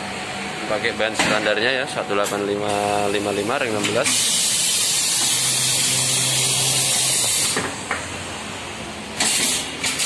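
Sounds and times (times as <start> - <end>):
steady loud hiss: 1.7 - 7.7.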